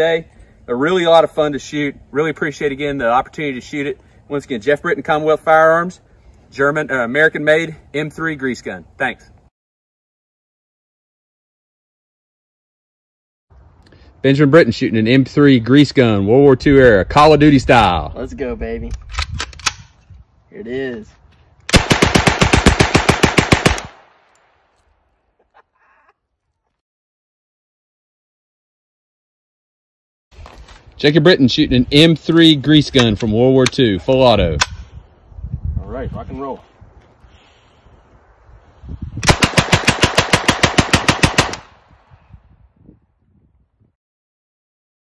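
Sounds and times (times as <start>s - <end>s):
submachine gun burst: 21.7s - 24.0s, 39.3s - 41.7s.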